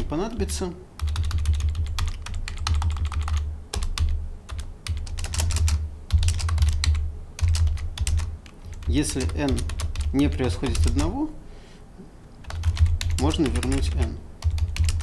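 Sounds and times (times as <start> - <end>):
computer keyboard typing: 1.0 - 11.2, 12.4 - 15.0.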